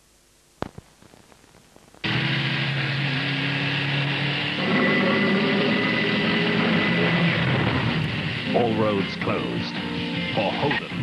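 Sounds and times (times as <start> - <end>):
car engine running hard: 2.0 - 10.4.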